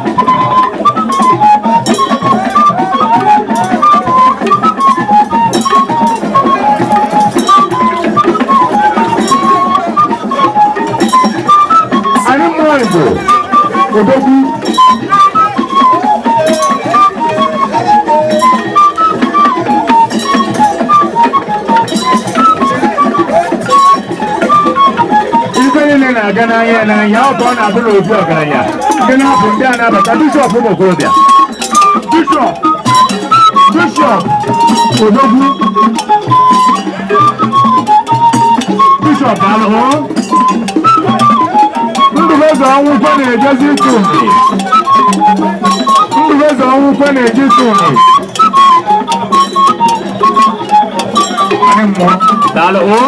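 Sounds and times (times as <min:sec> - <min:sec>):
fast rattle and drum rhythm: 0:00.0 - 0:53.0
high hopping melody: 0:00.0 - 0:53.0
voices calling out: 0:00.0 - 0:53.0.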